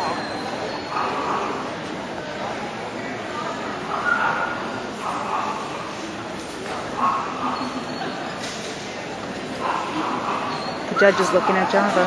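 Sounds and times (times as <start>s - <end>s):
dog whining: 0.0s - 1.7s, 6.8s - 8.4s, 9.6s - 12.0s
murmur of voices in echoing hall: 0.0s - 12.0s.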